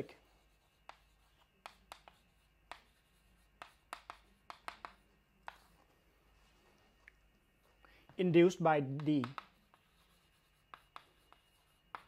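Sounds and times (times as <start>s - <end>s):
chalk tapping and scratching on blackboard: 0.0s - 12.0s.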